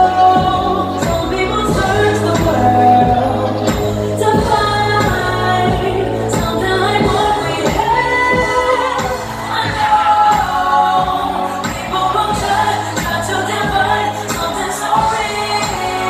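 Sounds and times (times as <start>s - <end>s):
pop song over sound system: 0.0s - 16.0s.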